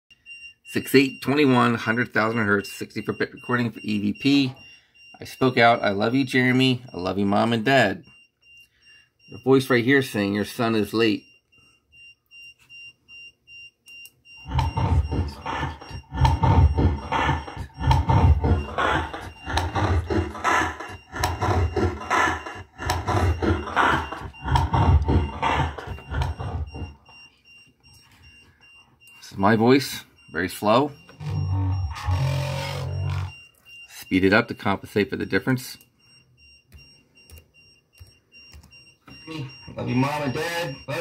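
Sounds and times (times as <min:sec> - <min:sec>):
slowed deep wavering voice: 0:14.5 - 0:26.9.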